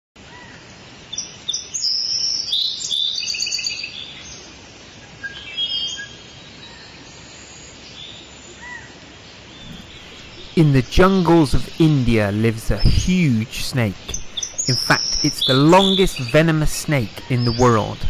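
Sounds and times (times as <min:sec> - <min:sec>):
steady background hiss: 0:00.2 - 0:18.0
birds chirping: 0:09.6 - 0:18.0.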